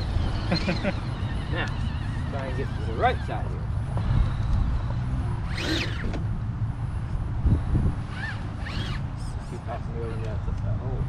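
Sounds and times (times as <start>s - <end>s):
rc car electric motor whirring: 0.0s - 6.4s, 7.0s - 10.3s
short rising and falling whines: 0.0s - 10.2s.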